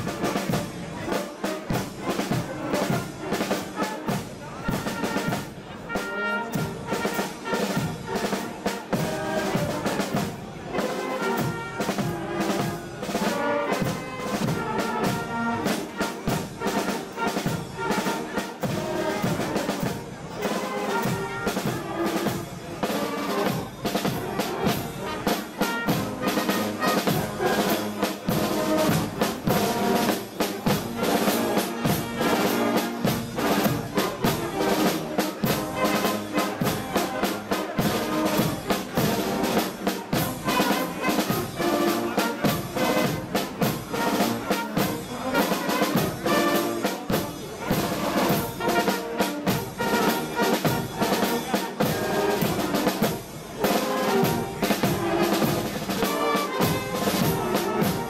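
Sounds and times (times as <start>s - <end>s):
cymbals: 0.0s - 58.0s
snare drum: 0.0s - 58.0s
trumpets and brass horns: 0.0s - 58.0s.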